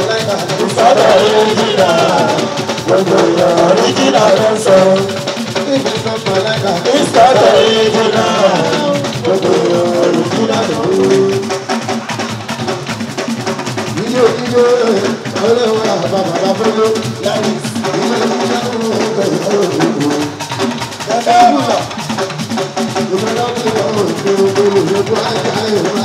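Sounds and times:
man singing into microphone: 0:00.0 - 0:11.6, 0:14.0 - 0:20.4, 0:23.1 - 0:26.0
hand drums and percussion: 0:00.0 - 0:26.0.

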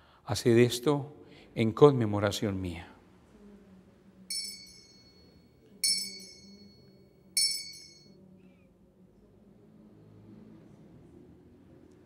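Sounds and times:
bell ringing: 0:04.3 - 0:08.2.

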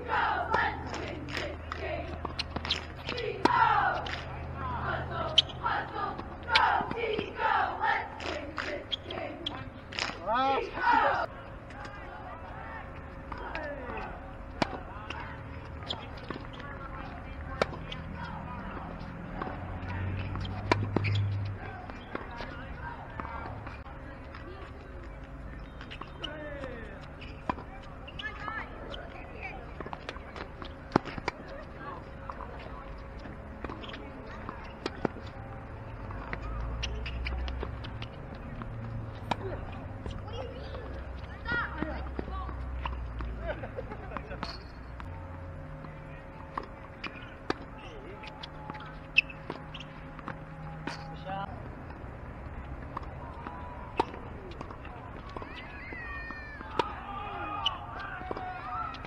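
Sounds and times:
shoes squeaking on hard court: 0:00.0 - 0:10.3, 0:12.9 - 0:43.4, 0:44.0 - 0:51.3, 0:51.9 - 0:59.0
tennis ball impact: 0:00.1 - 0:10.2, 0:13.2 - 0:23.8, 0:36.1 - 0:43.5, 0:52.9 - 0:59.0
high squeaks: 0:04.9 - 0:09.7, 0:20.2 - 0:22.1, 0:33.6 - 0:35.0, 0:36.4 - 0:38.1, 0:47.0 - 0:51.1, 0:55.3 - 0:56.8.

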